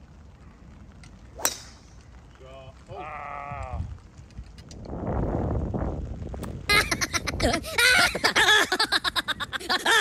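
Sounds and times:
golf club striking ball: 0:01.4 - 0:02.0.

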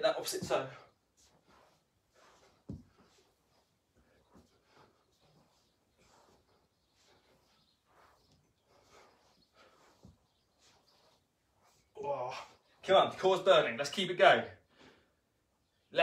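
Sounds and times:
person exercising on floor mat: 0:00.2 - 0:12.8.

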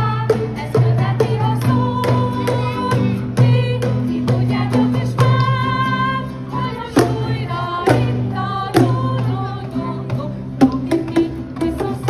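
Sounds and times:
children's choir singing: 0:00.0 - 0:12.0
instrumental accompaniment: 0:00.0 - 0:12.0.

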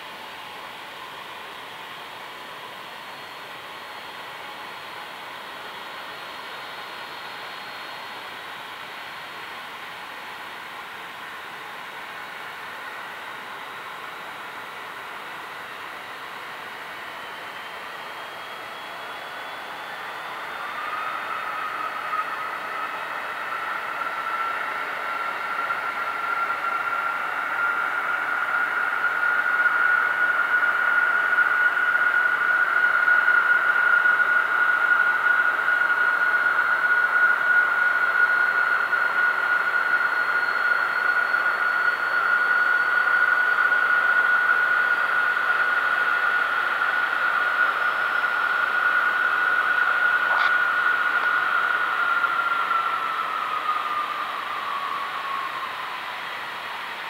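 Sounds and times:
jet engines running: 0:00.0 - 0:57.0.

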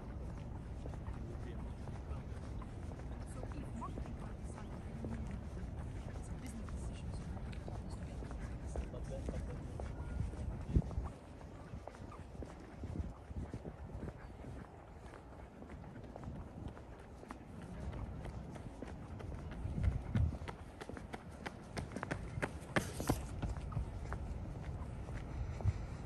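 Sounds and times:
footsteps on paved path: 0:00.0 - 0:26.0
sharp clicking footsteps: 0:00.0 - 0:26.0.

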